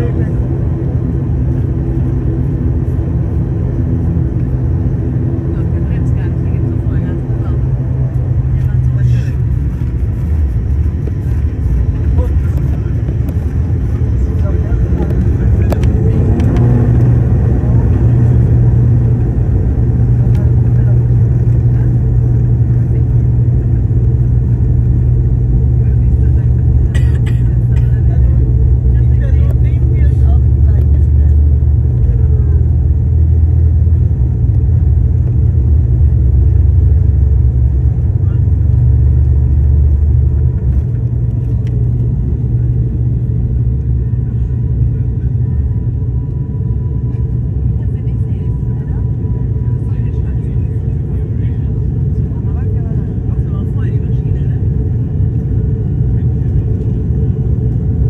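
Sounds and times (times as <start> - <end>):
turboprop engine drone in cabin: 0.0 - 58.0.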